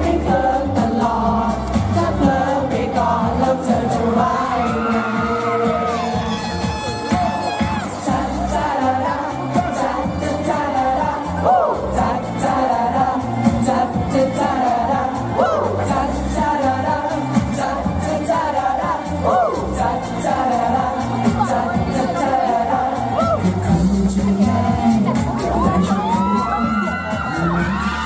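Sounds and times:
man singing into microphone: 0.0s - 28.0s
pop backing track with beat: 0.0s - 28.0s.

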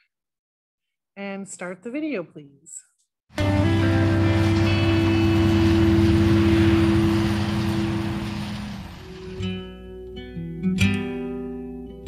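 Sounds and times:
combine harvester engine droning: 3.4s - 9.7s.

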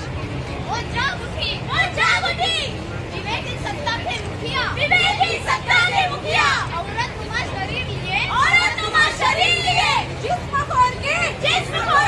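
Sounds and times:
crowd murmur: 0.0s - 12.0s
women speaking loudly: 0.7s - 12.0s.

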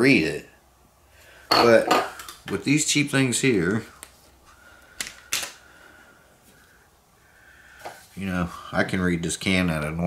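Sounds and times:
plastic eyeglass frames clicking: 5.0s - 5.6s.

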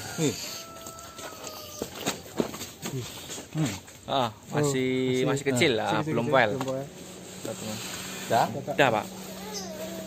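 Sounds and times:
cow hooves on concrete: 0.6s - 4.1s.

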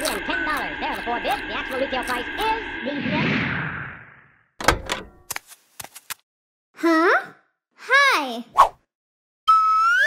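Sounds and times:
door latch clicks and knocks: 4.6s - 5.2s.

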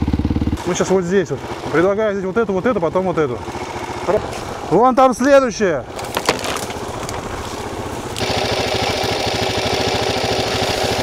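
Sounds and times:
motorcycle engine running: 0.0s - 4.7s, 6.0s - 11.0s.

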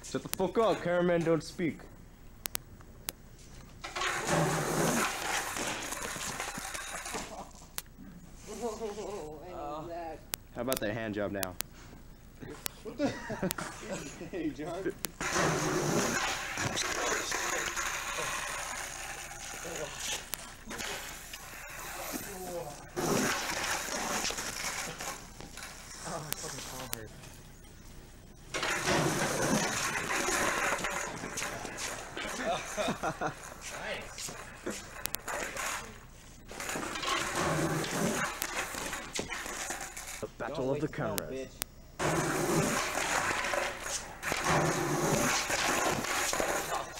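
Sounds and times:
tape hiss: 0.0s - 46.9s
skateboard rolling on concrete: 3.4s - 9.7s, 13.4s - 40.4s, 42.0s - 46.9s
men laughing: 6.9s - 7.7s, 8.4s - 9.4s, 12.4s - 18.8s, 28.9s - 35.0s
young men's voices: 12.4s - 15.1s, 15.9s - 18.6s.

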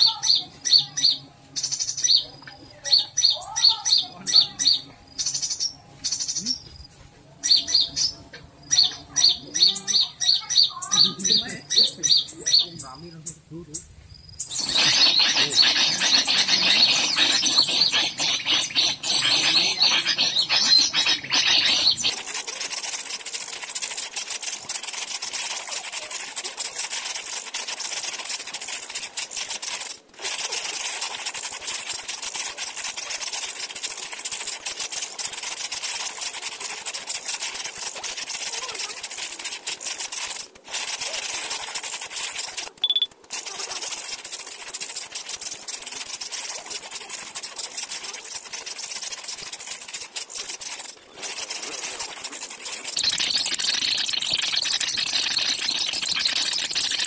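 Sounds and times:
bird chattering through phone speaker: 0.0s - 57.0s.

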